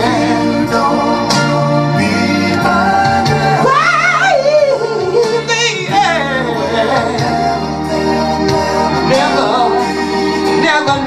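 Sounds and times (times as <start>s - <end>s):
instrumental backing track: 0.0s - 11.0s
man singing soul run: 0.0s - 11.0s.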